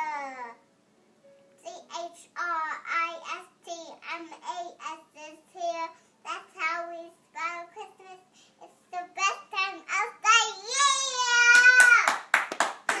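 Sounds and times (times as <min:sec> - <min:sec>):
girl singing: 0:01.6 - 0:08.3
hand claps: 0:11.4 - 0:13.0.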